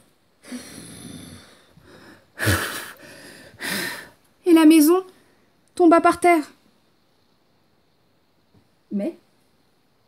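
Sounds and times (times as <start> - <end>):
person blowing and huffing: 0.4 - 4.2.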